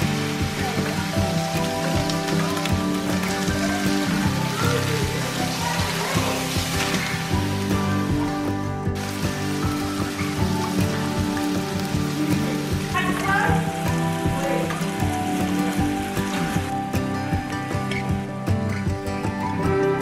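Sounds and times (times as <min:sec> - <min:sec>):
meat sizzling in a frying pan: 0:00.0 - 0:16.8
background music: 0:00.0 - 0:20.0.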